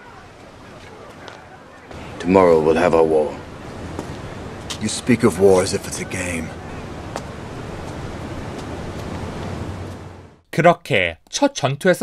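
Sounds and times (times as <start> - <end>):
fire crackles: 0.0 - 10.4
wood fire rushing: 0.0 - 10.4.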